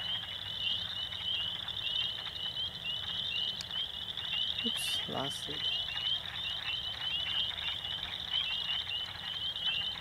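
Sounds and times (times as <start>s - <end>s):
frogs peeping: 0.0s - 10.0s.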